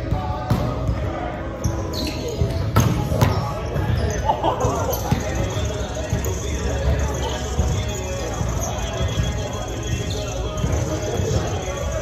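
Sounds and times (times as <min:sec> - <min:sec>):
volleyball bouncing on wooden floor: 0:00.0 - 0:01.0, 0:02.4 - 0:04.0
players' voices: 0:00.0 - 0:12.0.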